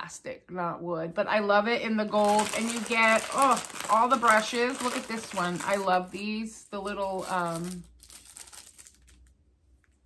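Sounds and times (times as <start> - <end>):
plastic packaging rustling: 2.1 - 9.4.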